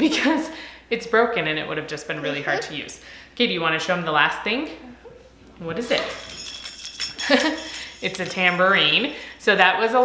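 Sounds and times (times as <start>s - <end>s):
tambourine bells jingling: 5.8s - 10.0s.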